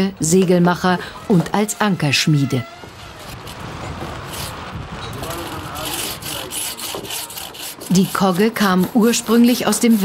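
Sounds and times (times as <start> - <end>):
hand saw cutting wood: 4.3 - 10.0.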